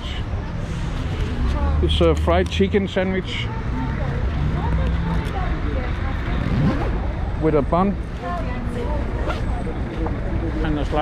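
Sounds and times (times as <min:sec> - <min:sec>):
low rumble of traffic: 0:00.0 - 0:11.0
voices of passers-by: 0:00.0 - 0:11.0.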